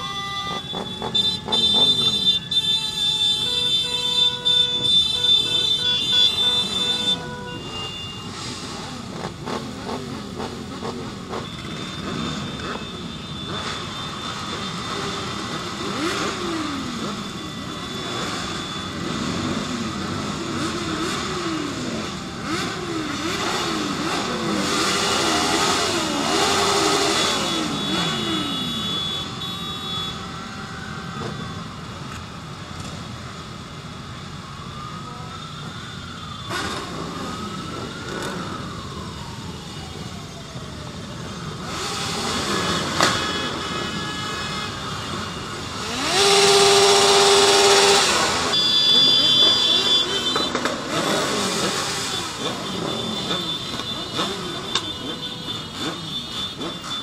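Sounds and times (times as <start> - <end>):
horn blaring: 0.0 - 31.8, 41.6 - 57.0
motorcycle engines revving: 0.0 - 57.0
short horn beep: 26.7 - 30.2, 48.4 - 50.7.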